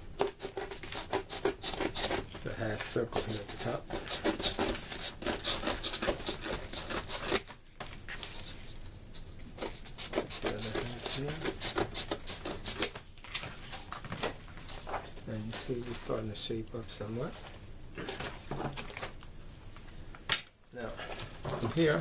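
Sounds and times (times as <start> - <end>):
cardboard being cut: 0.2 - 7.5, 9.6 - 13.4.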